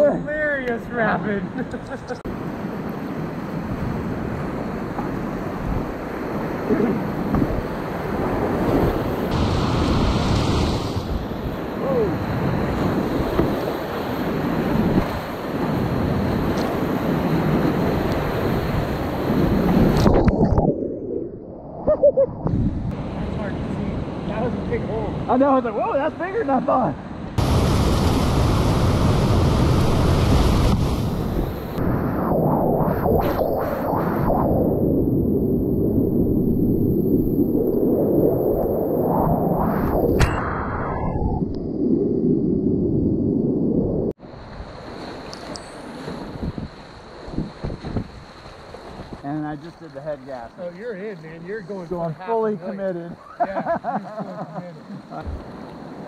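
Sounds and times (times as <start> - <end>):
water splashing microphone: 3.6 - 23.8, 27.4 - 41.8.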